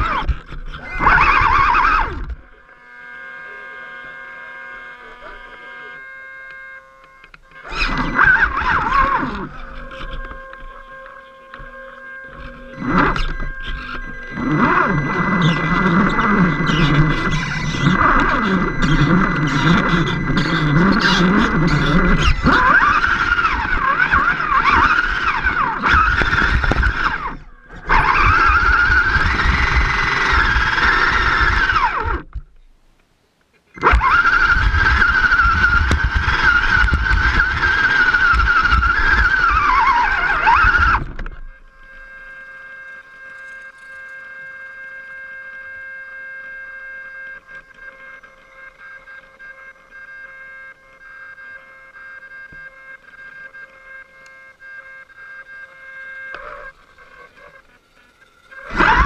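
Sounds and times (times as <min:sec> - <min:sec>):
toy car electric motor whining: 0:00.0 - 0:32.6, 0:33.7 - 0:59.0
faint electronic hum: 0:00.0 - 0:59.0.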